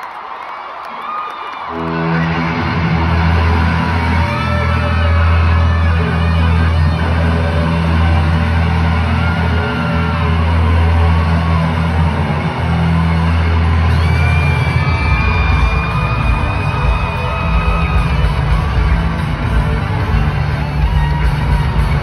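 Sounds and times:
distant pop-rock band over pa: 0:01.7 - 0:22.0.

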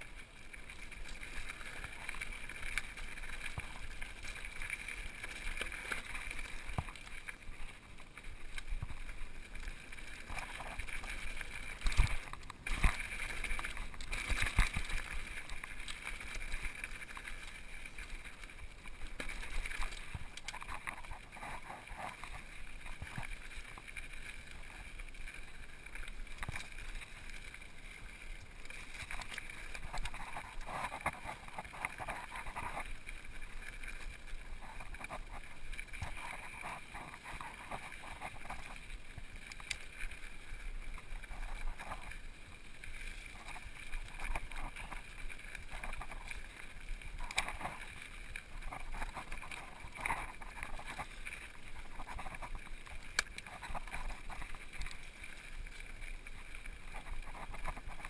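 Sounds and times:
bike rattling and clicking: 0:00.0 - 0:58.0
wind and tyre noise: 0:00.0 - 0:58.0.

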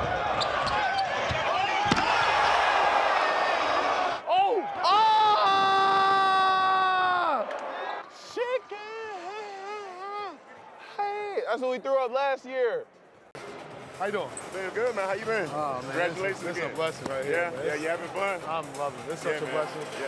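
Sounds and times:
arena crowd noise: 0:00.0 - 0:20.0.

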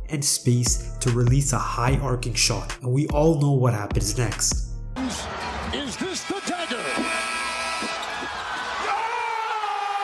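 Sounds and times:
game clock horn: 0:06.8 - 0:08.1.

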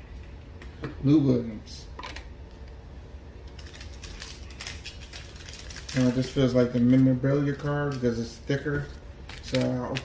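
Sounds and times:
cards shuffled by hand: 0:08.8 - 0:10.0.

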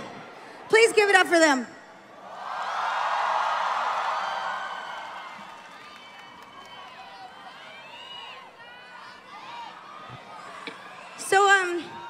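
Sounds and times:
crowd cheering and screaming: 0:02.2 - 0:12.0.

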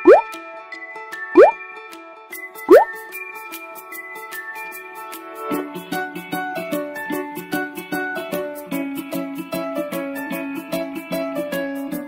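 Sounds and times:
cartoon bloop sound effect: 0:00.0 - 0:00.3, 0:01.4 - 0:01.6, 0:02.7 - 0:02.9
light background music: 0:00.0 - 0:12.0.

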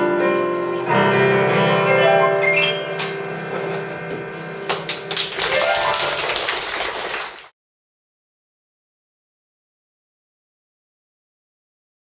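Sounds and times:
digital keyboard notes: 0:00.0 - 0:06.2
audience clapping: 0:03.5 - 0:07.5.

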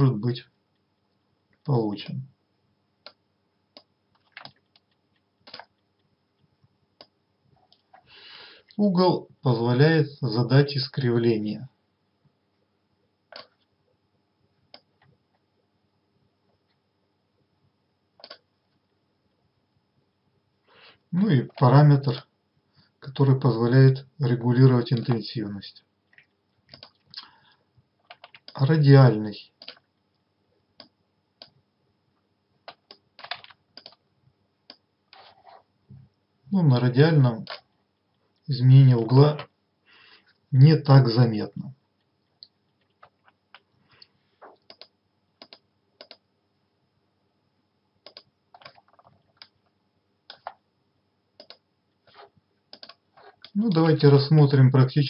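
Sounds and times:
computer mouse clicks: 0:03.0 - 0:06.1, 0:13.3 - 0:13.7, 0:14.7 - 0:15.1, 0:18.2 - 0:18.5, 0:26.1 - 0:27.3, 0:28.0 - 0:28.6, 0:29.6 - 0:29.9, 0:30.8 - 0:31.6, 0:32.6 - 0:34.0, 0:37.4 - 0:37.7, 0:44.4 - 0:46.2, 0:48.0 - 0:49.7, 0:50.3 - 0:50.6, 0:51.4 - 0:53.9.

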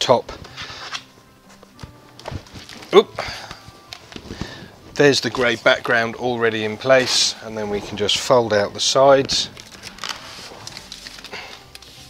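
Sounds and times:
fabric panel rustling: 0:00.4 - 0:12.0.

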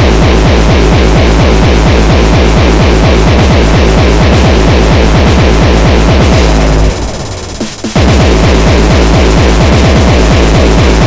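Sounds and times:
hardcore techno music: 0:00.0 - 0:11.0.

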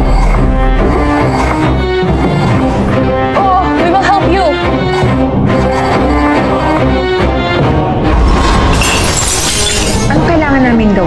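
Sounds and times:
glass shattering: 0:08.4 - 0:10.1.

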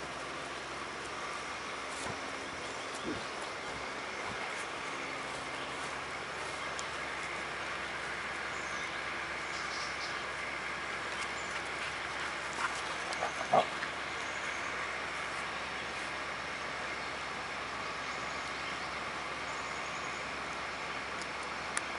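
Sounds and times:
steady background hiss: 0:00.0 - 0:21.9.

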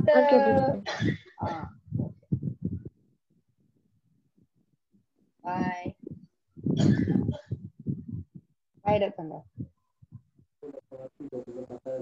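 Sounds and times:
person's voice over video call: 0:10.6 - 0:12.0.

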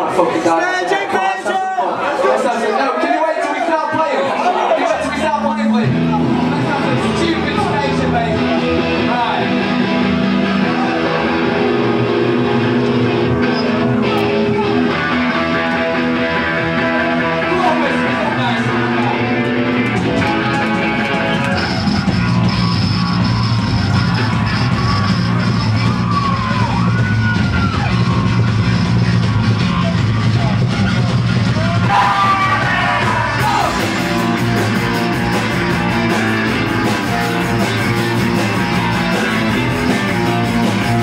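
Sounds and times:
live rock band playing: 0:04.8 - 0:41.0.

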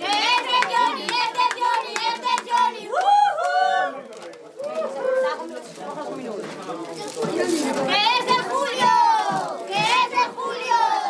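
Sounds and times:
overlapping voices: 0:00.0 - 0:04.8, 0:07.3 - 0:11.0.

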